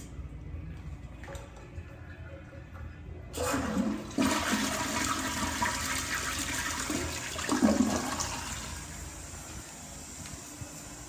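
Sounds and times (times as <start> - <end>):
toilet flushing: 3.3 - 10.2.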